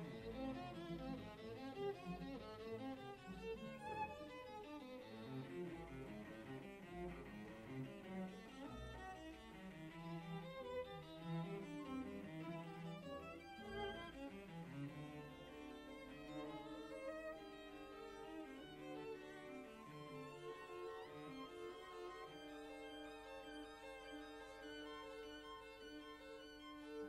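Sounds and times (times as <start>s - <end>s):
violin and cello playing: 0.0s - 27.0s.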